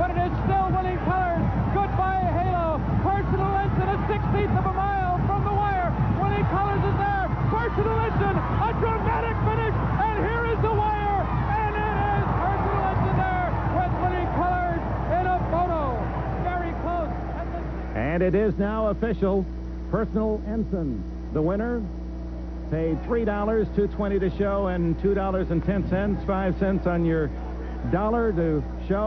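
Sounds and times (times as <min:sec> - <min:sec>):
crowd cheering and yelling: 0:00.0 - 0:18.9, 0:22.7 - 0:29.0.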